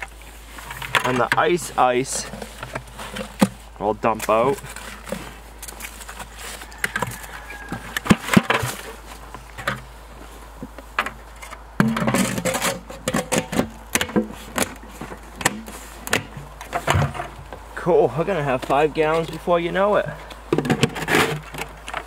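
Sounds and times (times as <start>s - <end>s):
plastic buckets clattering: 0.0s - 9.9s, 10.6s - 17.6s, 18.3s - 22.0s.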